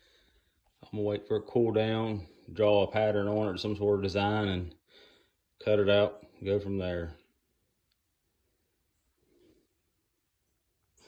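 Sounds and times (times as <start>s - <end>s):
man's voice: 0.8s - 4.7s, 5.6s - 7.2s.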